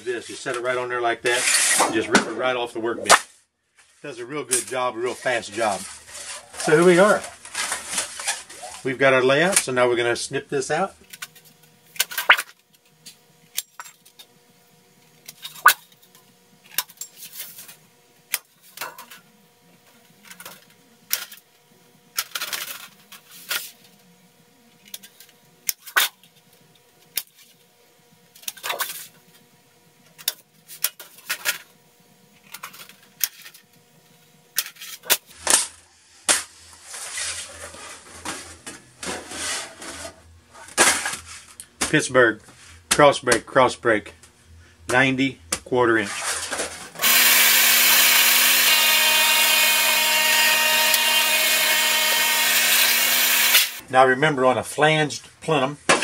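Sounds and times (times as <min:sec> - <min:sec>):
tin snips cutting sheet metal: 0:52.4 - 0:53.8.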